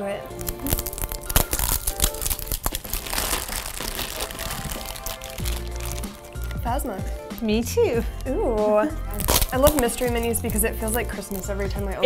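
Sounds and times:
wrapping crinkling: 0.2s - 12.0s
cardboard boxes tearing open: 0.4s - 6.4s, 9.1s - 10.2s.

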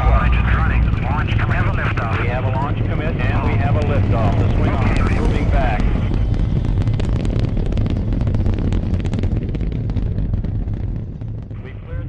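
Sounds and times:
rocket engines roaring: 0.0s - 12.0s.

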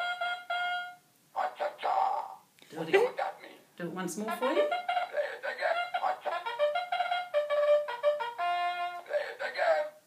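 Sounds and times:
electronic trumpet-like toy tune: 0.0s - 1.1s, 4.4s - 9.2s.

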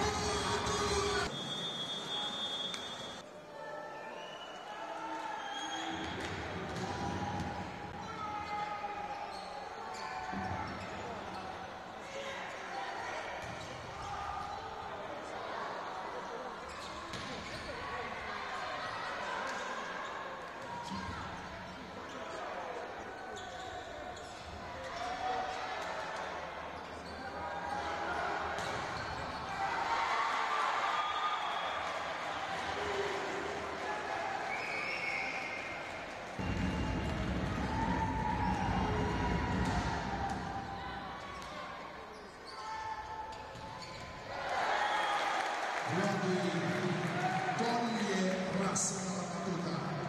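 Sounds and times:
arena crowd noise: 0.0s - 50.0s.

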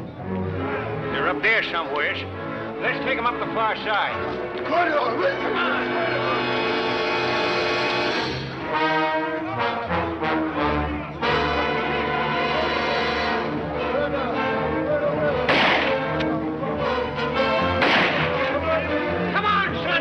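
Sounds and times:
orchestral music with brass chords: 0.0s - 20.0s
loud crash: 15.5s - 16.0s, 17.8s - 18.4s.

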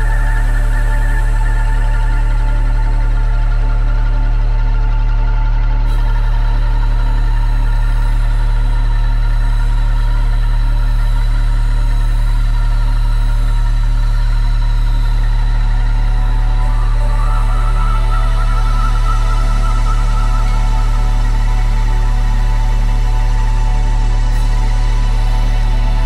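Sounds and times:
deep electronic drone: 0.0s - 26.0s
layered sustained tones: 0.0s - 26.0s
wavering higher tone: 16.0s - 23.0s.

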